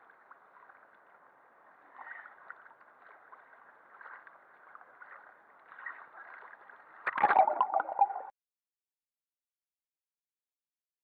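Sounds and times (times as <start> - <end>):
small water splashes: 0.0 - 8.3
water lapping and sloshing: 0.0 - 8.3.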